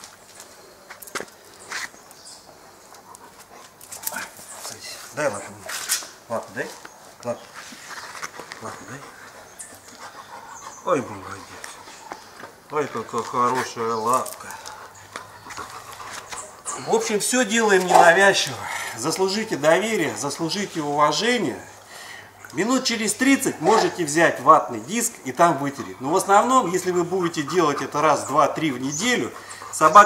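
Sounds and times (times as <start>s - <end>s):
dog panting: 2.6s - 5.7s, 7.0s - 24.2s, 25.1s - 30.0s.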